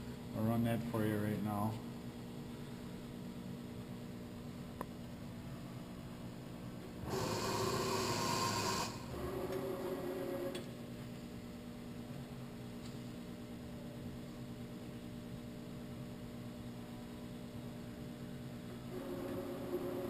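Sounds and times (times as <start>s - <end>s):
machine steady hum: 0.0s - 20.0s
milling machine motor whine: 7.0s - 10.7s, 18.9s - 20.0s.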